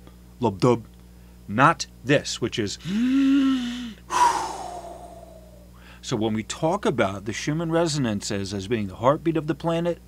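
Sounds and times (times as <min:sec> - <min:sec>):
man exhaling: 0:02.9 - 0:06.0.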